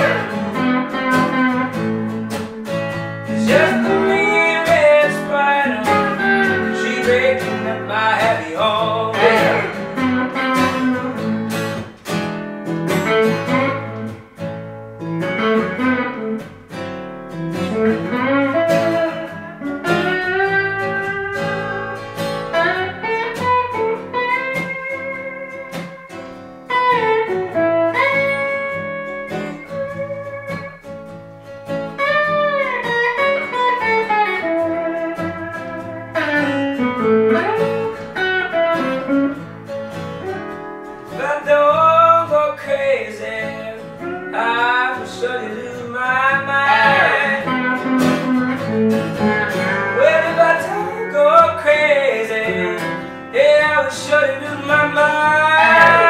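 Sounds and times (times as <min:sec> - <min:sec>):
electric guitar lead: 0:00.0 - 0:56.0
strummed acoustic guitar: 0:00.0 - 0:56.0.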